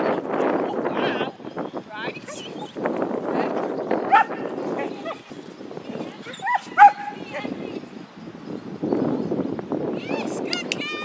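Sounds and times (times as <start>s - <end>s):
dog barking in sharp yips: 6.4s - 7.1s.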